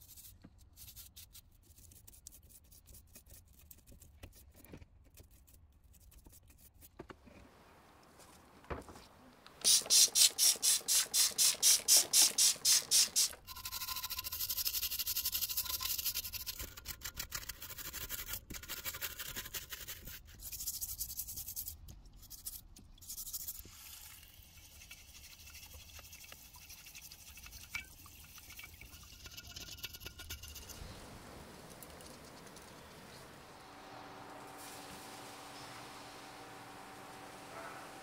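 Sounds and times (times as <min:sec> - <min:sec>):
stiff brush scrubbing metal: 0:24.5 - 0:33.5.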